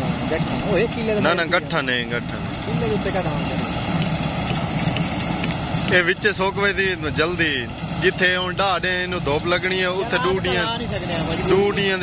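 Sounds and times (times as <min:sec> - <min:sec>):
combine harvester drone: 0:00.0 - 0:12.0.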